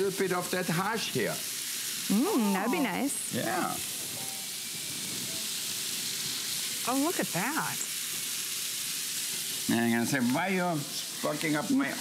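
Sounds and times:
food sizzling on a griddle: 0:00.0 - 0:12.0.

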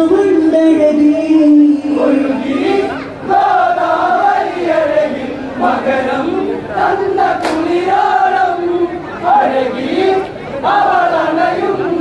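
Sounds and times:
sharp click: 0:07.4 - 0:07.7.

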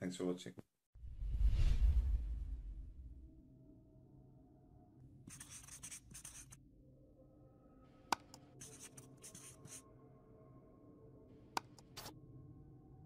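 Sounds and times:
pen scratching on paper: 0:05.3 - 0:06.6, 0:08.2 - 0:09.8, 0:11.6 - 0:12.1.

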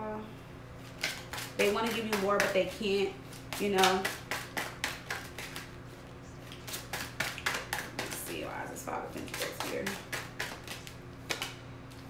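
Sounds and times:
cards being shuffled: 0:03.3 - 0:05.8, 0:09.2 - 0:12.0.

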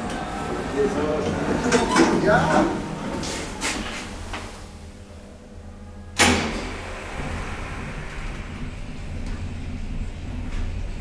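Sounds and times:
elevator hum and rumble: 0:00.0 - 0:11.0.

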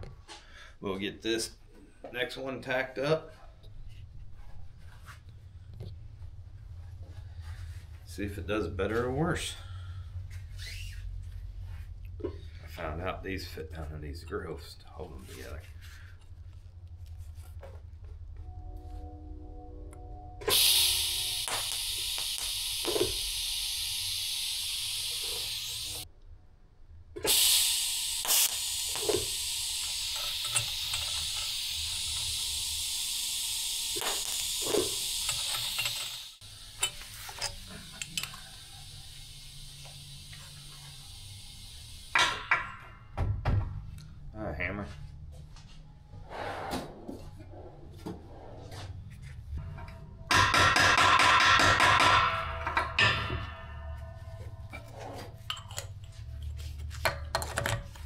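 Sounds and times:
welding arc hissing: 0:20.4 - 0:26.1, 0:27.2 - 0:42.6
tube and tools clinking: 0:28.3 - 0:32.4, 0:34.0 - 0:38.6, 0:52.6 - 0:58.0.

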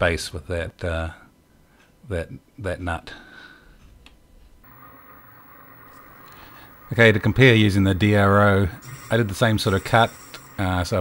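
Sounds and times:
low steady hum: 0:04.4 - 0:11.0.

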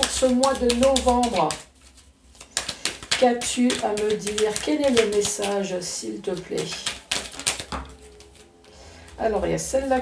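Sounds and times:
cards being shuffled: 0:00.0 - 0:05.7, 0:06.3 - 0:08.5.

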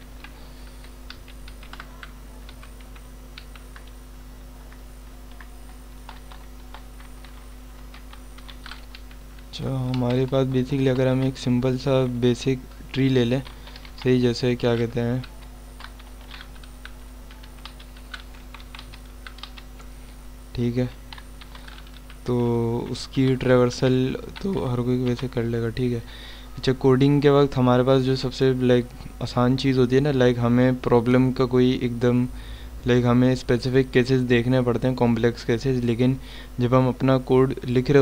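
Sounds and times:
steady low hum: 0:00.0 - 0:38.0
computer keyboard typing: 0:00.2 - 0:04.0, 0:04.7 - 0:12.1, 0:12.8 - 0:19.9, 0:21.1 - 0:22.3, 0:23.1 - 0:25.6
keyboard keys clicking: 0:00.2 - 0:04.0, 0:17.3 - 0:19.9.

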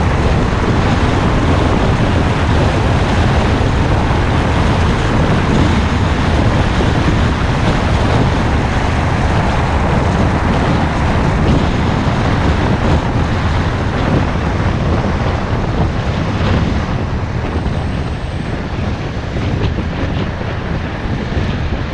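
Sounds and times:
scooter engine running: 0:00.0 - 0:21.9
wind rushing over microphone: 0:00.0 - 0:21.9.

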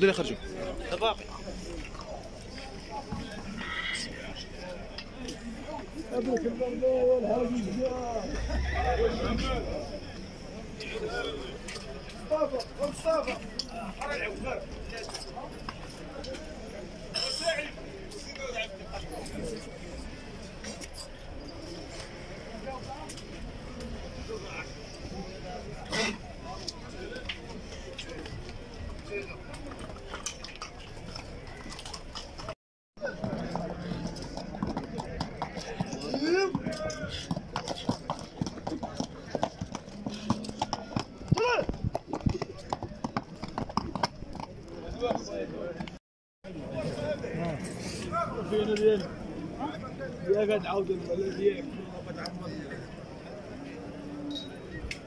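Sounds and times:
murmur of men's voices: 0:00.0 - 0:29.9
horse hooves clopping: 0:26.6 - 0:46.0.

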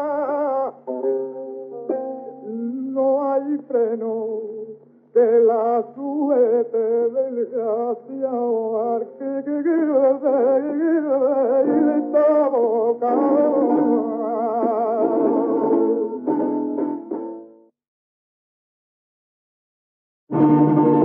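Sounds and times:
man singing flamenco: 0:00.0 - 0:01.0, 0:02.4 - 0:16.4
guitar chords: 0:00.0 - 0:03.2, 0:11.6 - 0:17.7, 0:20.3 - 0:21.0.

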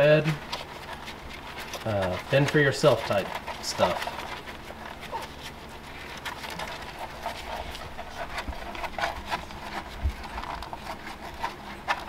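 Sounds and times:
puppies suckling: 0:00.0 - 0:12.0.

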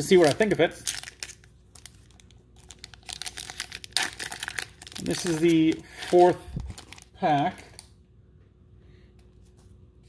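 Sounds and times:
foil pack crinkling: 0:00.0 - 0:07.9.

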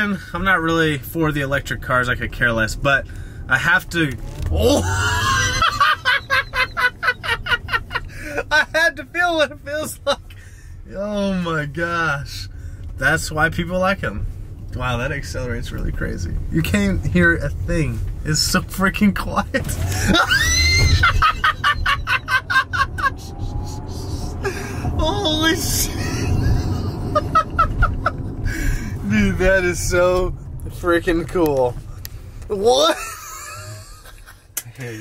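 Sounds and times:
startled cry: 0:04.5 - 0:05.8, 0:20.1 - 0:21.4
man laughing hard: 0:04.6 - 0:08.8, 0:19.8 - 0:25.2, 0:25.8 - 0:28.6, 0:32.9 - 0:34.4.

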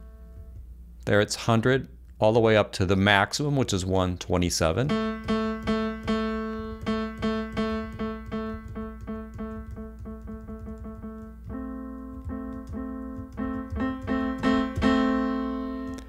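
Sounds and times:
repeated piano note: 0:04.9 - 0:16.0.

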